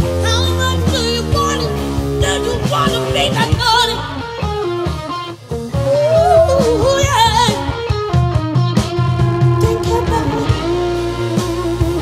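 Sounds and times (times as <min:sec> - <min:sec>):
electric guitar bending melody: 0:00.0 - 0:12.0
live band playing: 0:00.0 - 0:12.0.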